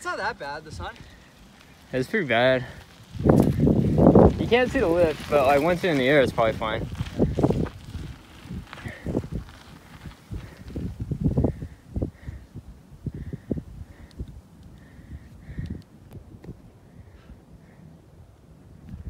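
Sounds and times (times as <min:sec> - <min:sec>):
bike thumping over dirt trail: 0:03.0 - 0:11.4.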